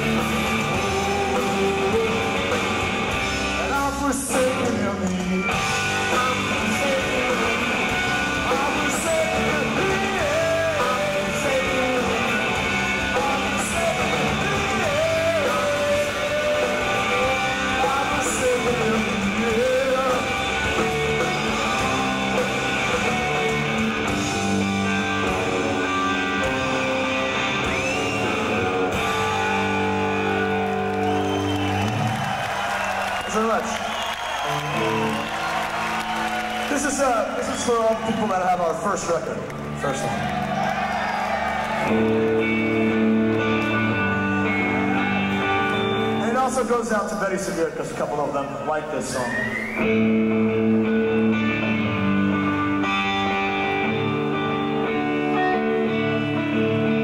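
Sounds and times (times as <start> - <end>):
rock band playing: 0.0 - 57.0.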